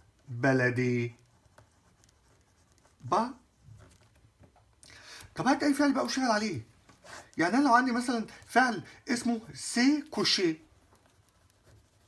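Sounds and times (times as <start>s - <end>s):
pen scratching on paper: 0.9s - 4.0s, 9.2s - 12.0s.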